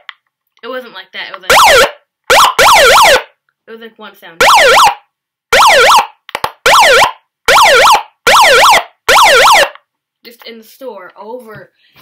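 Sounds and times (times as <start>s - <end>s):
megaphone siren wailing: 1.5s - 3.3s, 4.4s - 5.0s, 5.6s - 6.1s, 6.7s - 9.8s.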